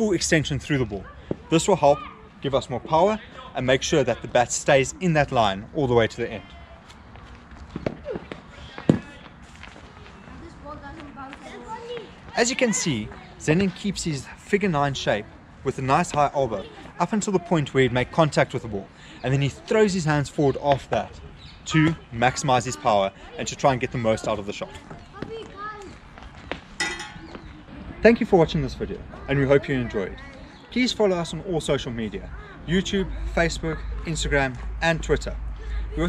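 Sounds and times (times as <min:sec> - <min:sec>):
faint distant voices: 0:00.0 - 0:36.0
shuffling steps on artificial turf: 0:06.8 - 0:13.9.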